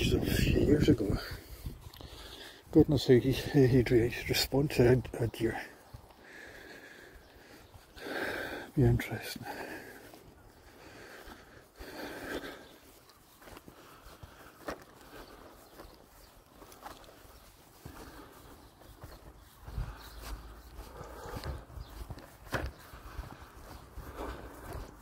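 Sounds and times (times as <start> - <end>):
footsteps on grass: 0.0 - 25.0.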